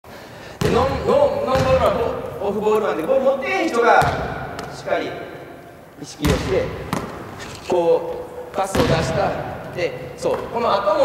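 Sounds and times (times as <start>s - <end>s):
basketball bouncing on wooden floor: 0.6s - 2.1s, 4.0s - 4.8s, 8.6s - 9.2s.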